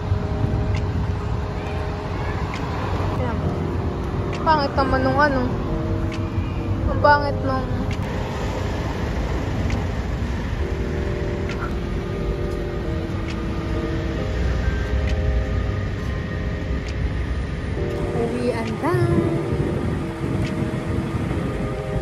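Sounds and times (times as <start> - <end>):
faint music: 0.0 - 22.0
low rumble of street traffic: 0.0 - 22.0.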